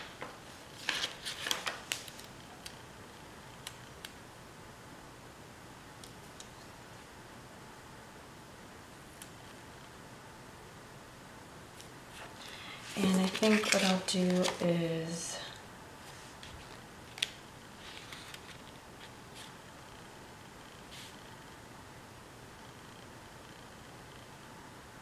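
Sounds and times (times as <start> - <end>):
steady room hiss: 0.0 - 25.0
paper stickers crackling: 0.8 - 2.8, 12.9 - 14.9, 16.4 - 19.5.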